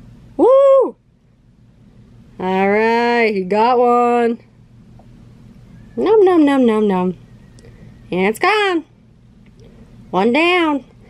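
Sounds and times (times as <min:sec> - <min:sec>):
faint low hum: 0:00.0 - 0:11.0
woman exclaiming ooh: 0:00.4 - 0:01.0.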